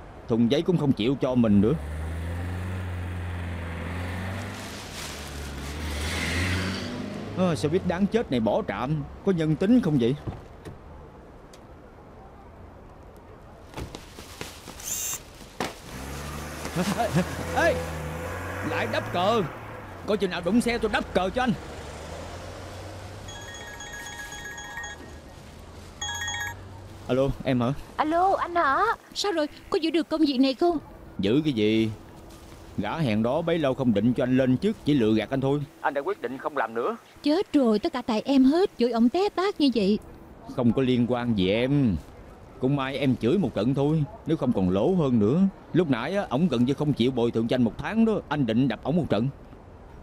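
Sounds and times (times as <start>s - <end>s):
street traffic noise: 0.0s - 50.0s
minibus engine hum: 1.1s - 9.6s, 13.4s - 40.5s
mobile phone ringtone: 23.3s - 25.2s, 26.0s - 26.7s.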